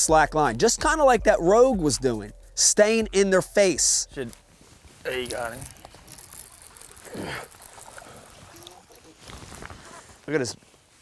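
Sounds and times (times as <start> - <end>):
faint outdoor hiss: 0.0 - 11.0.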